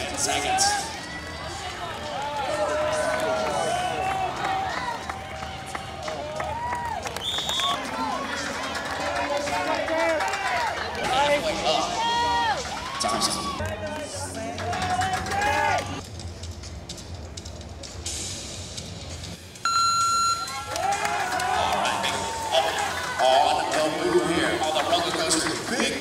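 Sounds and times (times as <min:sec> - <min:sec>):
crowd shouting: 0:00.0 - 0:13.7, 0:14.8 - 0:16.0, 0:20.5 - 0:26.0
electronic beep: 0:19.6 - 0:20.6.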